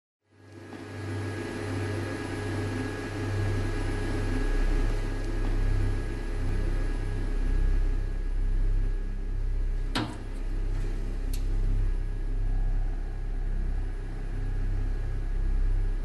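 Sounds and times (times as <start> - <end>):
switchboard electrical hum: 0.3 - 16.0
low rumble: 0.5 - 16.0.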